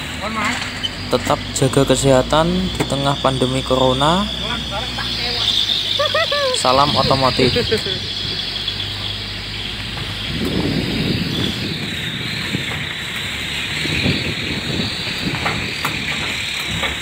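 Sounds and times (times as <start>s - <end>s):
low rumble of engine and tyres: 0.0s - 17.0s.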